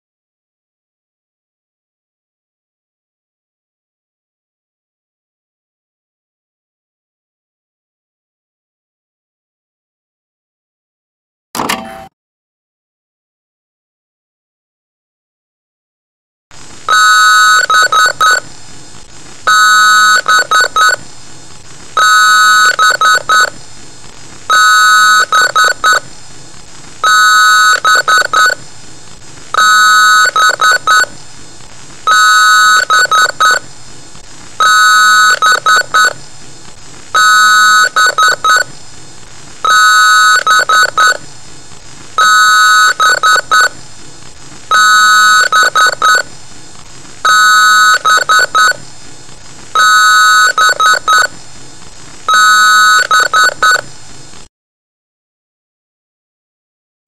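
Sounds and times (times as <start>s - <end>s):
loud multi-tone electronic beep: 11.6s - 12.2s, 16.9s - 18.4s, 19.5s - 21.0s, 22.0s - 23.5s, 24.5s - 26.0s, 27.0s - 28.6s, 29.6s - 31.1s, 32.1s - 33.6s, 34.6s - 36.2s, 37.2s - 38.7s, 39.6s - 41.2s, 42.2s - 43.8s, 44.7s - 46.3s, 47.3s - 48.8s, 49.8s - 51.3s, 52.3s - 53.9s
steady hum: 16.5s - 54.5s.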